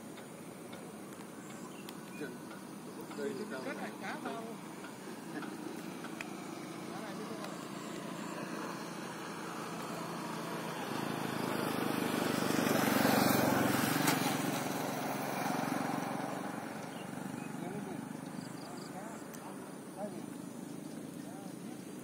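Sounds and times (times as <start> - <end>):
vehicle passing: 2.1 - 22.0.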